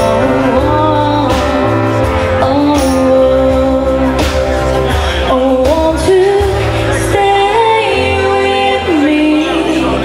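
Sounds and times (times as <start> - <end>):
band playing: 0.0 - 10.0
electric guitar: 0.0 - 10.0
woman singing into a microphone: 0.0 - 10.0.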